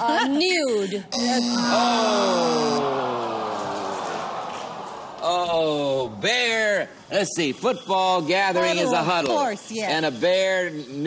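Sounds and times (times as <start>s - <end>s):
electronic time-up tone: 1.2s - 2.8s.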